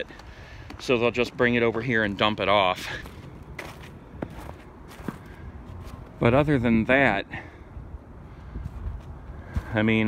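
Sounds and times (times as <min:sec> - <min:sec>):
footsteps on snow: 0:00.0 - 0:07.0, 0:08.6 - 0:10.0.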